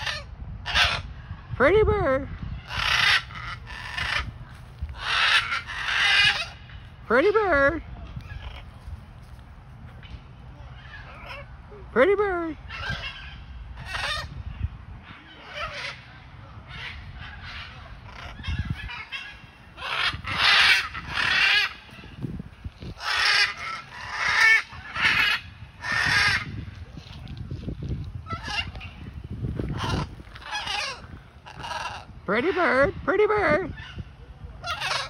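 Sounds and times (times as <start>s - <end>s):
parrot squawking harshly: 0.0s - 1.0s, 2.6s - 4.4s, 5.0s - 6.6s, 12.7s - 14.4s, 15.4s - 16.0s, 16.7s - 22.2s, 22.9s - 26.5s, 28.2s - 32.7s, 34.6s - 35.0s.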